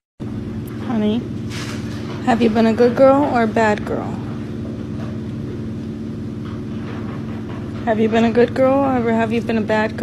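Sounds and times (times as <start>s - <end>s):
steady low hum: 0.2s - 10.0s.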